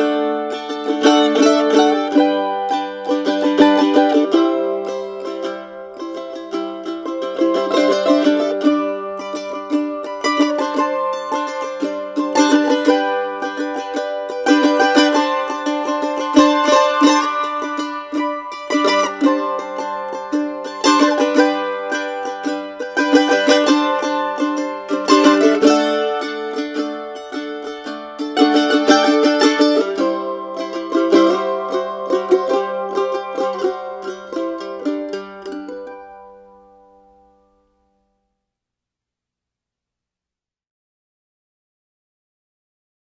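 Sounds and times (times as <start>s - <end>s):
strummed and plucked strings: 0.0s - 37.9s.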